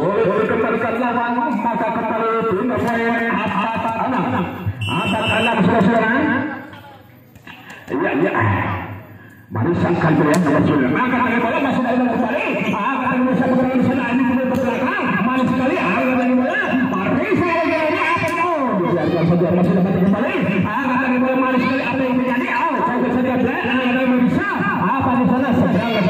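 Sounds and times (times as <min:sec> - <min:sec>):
man talking: 0:00.0 - 0:06.7, 0:07.8 - 0:26.0.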